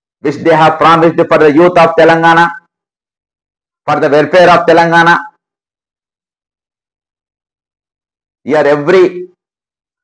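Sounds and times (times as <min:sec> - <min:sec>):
man speaking: 0:00.2 - 0:02.7, 0:03.9 - 0:05.4, 0:08.5 - 0:09.4.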